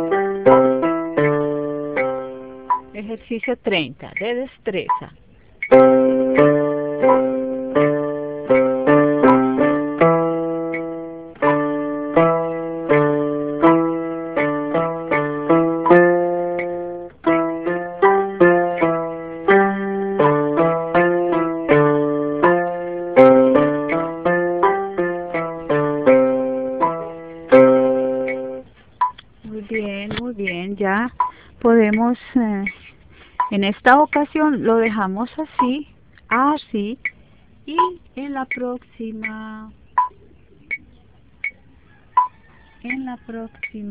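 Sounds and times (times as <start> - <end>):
electronic keyboard playing: 0.0 - 5.0, 5.6 - 41.6.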